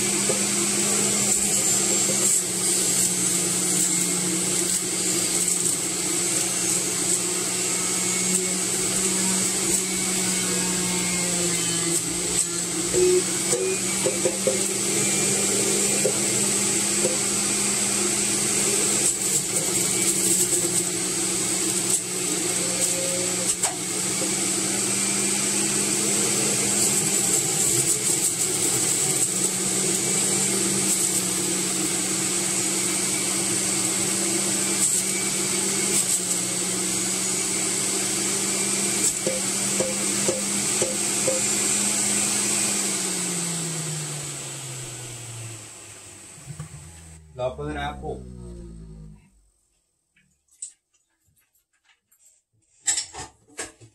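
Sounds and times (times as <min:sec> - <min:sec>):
juicer motor humming and whining: 0:00.0 - 0:47.5.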